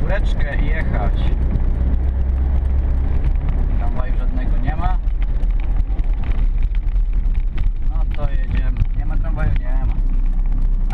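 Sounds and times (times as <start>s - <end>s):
car engine and road noise: 0.0s - 10.9s.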